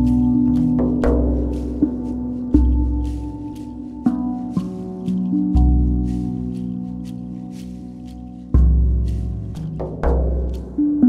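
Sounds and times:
deep drum beat: 0.0 - 11.0
steel tongue drum notes: 0.0 - 11.0.

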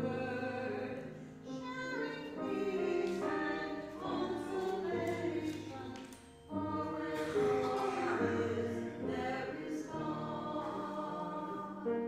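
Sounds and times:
piano accompaniment: 0.0 - 12.0
small group singing: 0.0 - 12.0.

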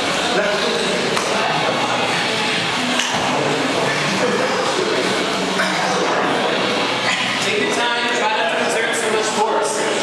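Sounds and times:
noisy room sound: 0.0 - 10.0.

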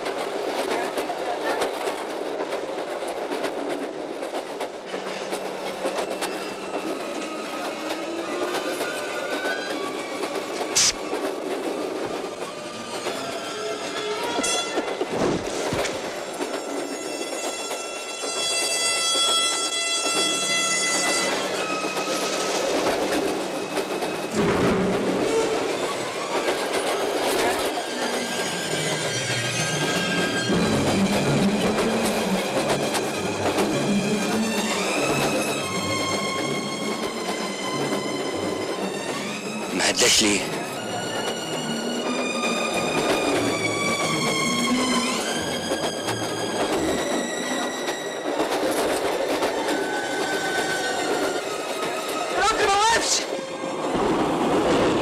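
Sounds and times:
train wheels rumbling on rails: 0.0 - 55.0.

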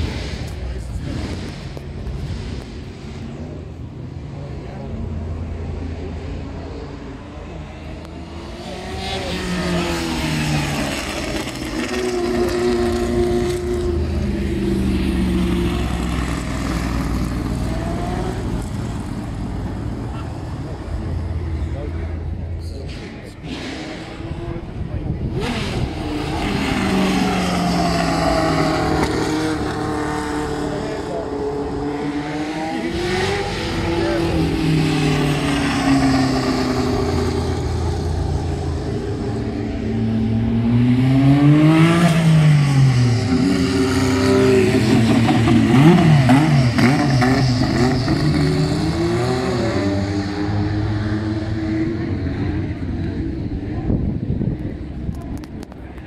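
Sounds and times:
racing car engines passing: 0.0 - 56.0.

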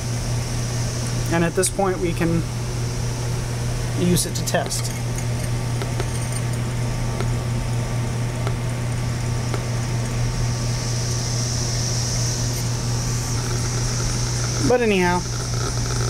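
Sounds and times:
low hum: 0.0 - 16.0
high hiss: 9.0 - 16.0.

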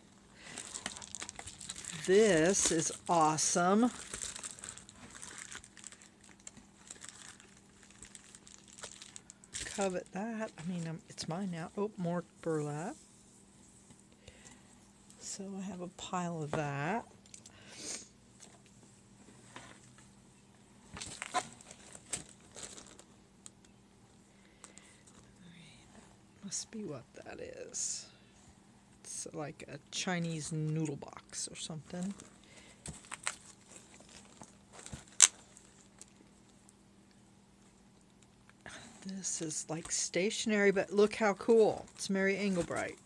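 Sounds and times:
plastic mailer crinkling: 0.4 - 10.9, 21.0 - 23.1, 32.0 - 36.2.

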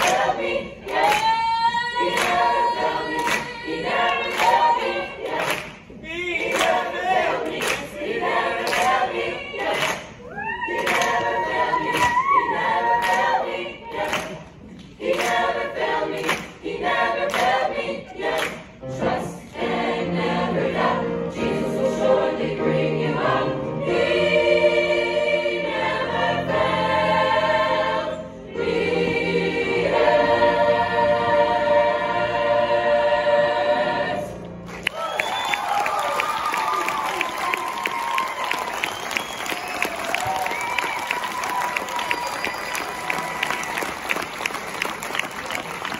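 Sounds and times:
hand claps: 0.0 - 1.4, 2.1 - 2.5, 3.2 - 3.6, 5.3 - 6.9, 7.5 - 7.9, 8.6 - 9.0, 9.6 - 10.2, 14.0 - 15.5, 16.2 - 16.6, 17.3 - 17.6, 18.3 - 18.6
choir singing a cappella: 0.0 - 34.6.

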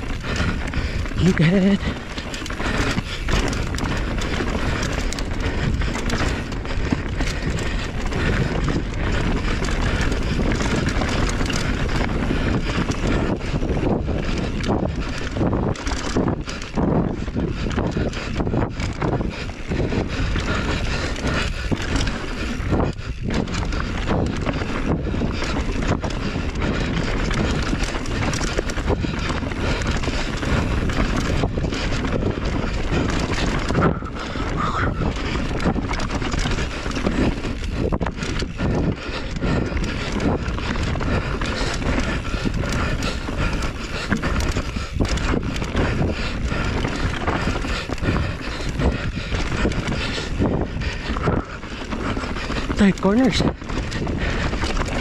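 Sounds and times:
bike tyre noise: 0.0 - 55.0
wind rushing over microphone: 0.0 - 55.0.

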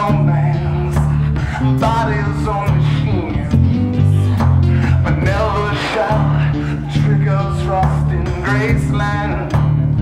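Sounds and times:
acoustic guitar: 0.0 - 10.0
repeating low bass line: 0.0 - 10.0.

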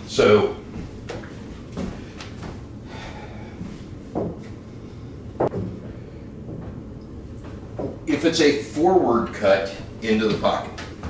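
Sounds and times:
footsteps on hardwood floor: 0.7 - 2.7, 3.6 - 4.6, 5.4 - 8.1, 10.2 - 11.0
pool balls knocking: 5.4 - 8.1.

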